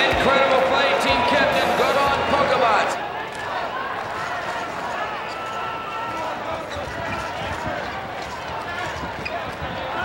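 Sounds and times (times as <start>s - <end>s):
arena crowd murmur: 0.0s - 10.0s.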